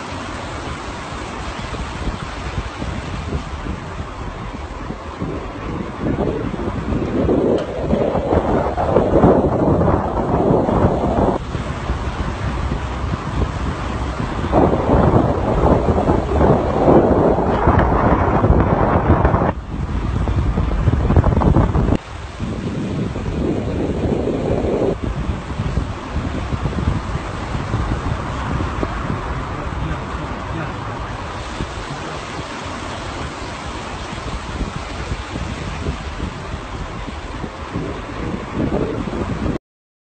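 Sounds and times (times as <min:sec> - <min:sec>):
road rumble: 0:00.0 - 0:39.6
wind buffeting microphone: 0:00.0 - 0:39.6.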